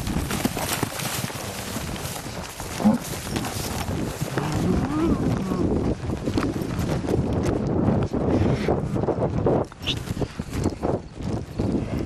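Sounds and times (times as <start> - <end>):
bull mooing: 4.3 - 5.8.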